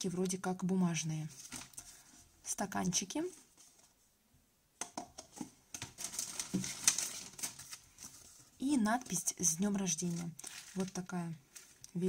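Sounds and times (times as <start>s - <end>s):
plastic bag rustling: 1.3s - 2.3s, 5.4s - 12.0s
paper cups clicking and tapping: 4.8s - 8.4s, 9.0s - 12.0s.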